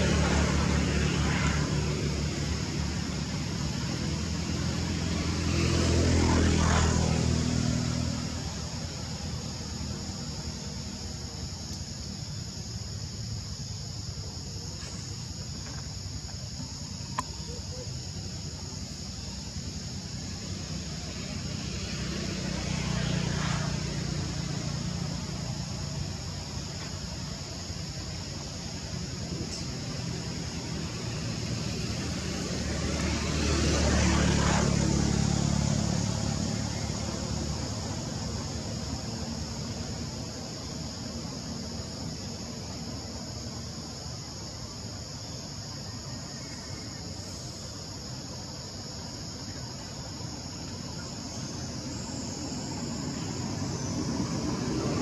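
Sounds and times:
motor vehicle passing: 0:00.0 - 0:11.0, 0:18.7 - 0:26.6, 0:29.7 - 0:40.4, 0:47.1 - 0:55.0
high insect drone: 0:00.0 - 0:55.0.

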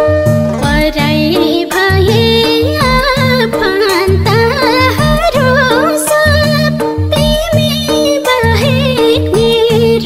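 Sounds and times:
folk accompaniment: 0:00.0 - 0:10.0
woman singing ornamented melody: 0:00.5 - 0:10.0.

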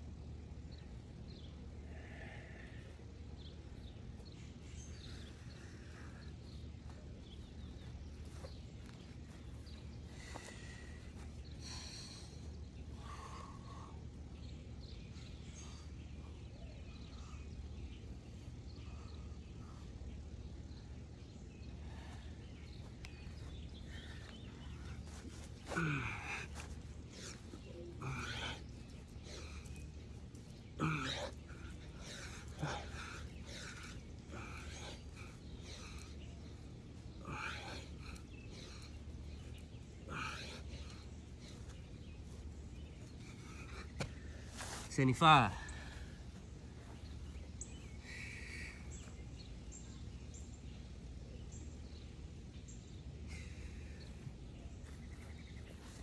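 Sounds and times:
steady low hum: 0:00.0 - 0:56.0
man breathing hard: 0:01.7 - 0:49.2, 0:53.1 - 0:56.0
man grunting: 0:25.7 - 0:26.4, 0:30.8 - 0:31.4.

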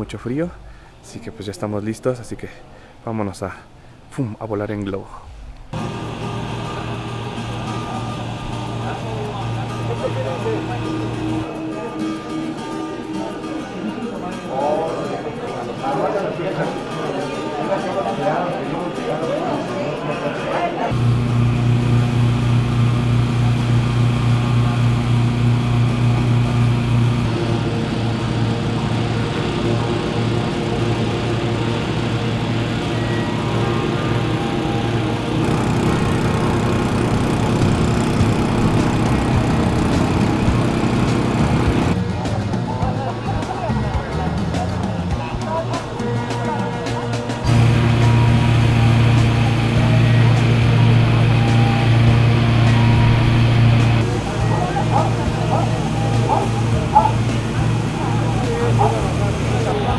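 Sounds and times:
inflator fans humming: 0:05.3 - 0:11.6, 0:20.9 - 0:42.1, 0:45.5 - 0:59.9
voices in background: 0:07.8 - 0:21.0, 0:41.9 - 0:52.0, 0:53.8 - 0:59.9.

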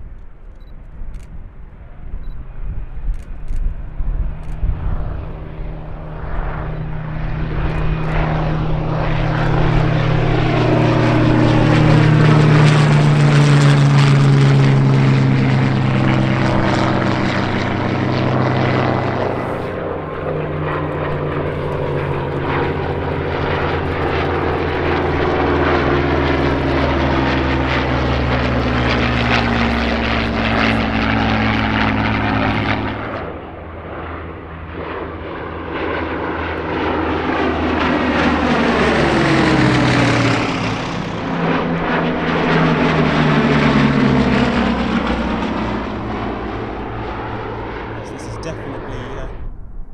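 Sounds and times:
propeller plane engines roaring: 0:00.0 - 0:49.9
fighter formation droning past: 0:03.8 - 0:49.9.

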